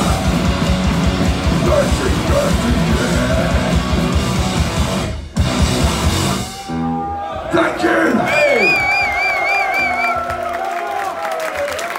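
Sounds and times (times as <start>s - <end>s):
punk band playing loudly: 0.0s - 7.1s
shouted vocals: 6.4s - 11.9s.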